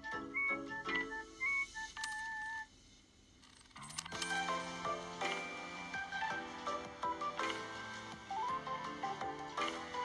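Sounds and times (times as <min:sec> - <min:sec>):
light keyboard melody: 0:00.0 - 0:02.6, 0:04.0 - 0:10.0.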